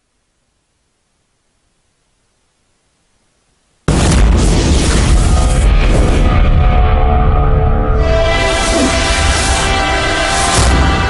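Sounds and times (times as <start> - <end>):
cinematic boom with heavy bass: 3.9 - 11.0.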